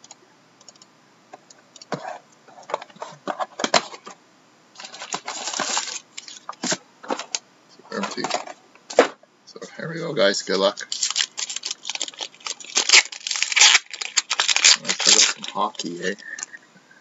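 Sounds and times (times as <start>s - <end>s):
cardboard scraping rustle: 4.8s - 7.3s.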